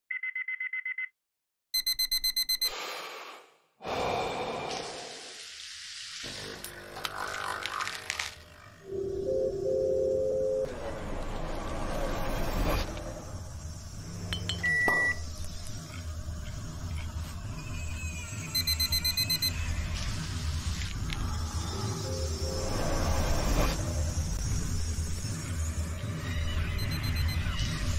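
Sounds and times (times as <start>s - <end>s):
rapid beeps: 1.8s - 2.8s, 17.8s - 19.7s, 26.1s - 27.9s
steady electronic tones: 8.8s - 10.7s
background music: 8.9s - 13.3s.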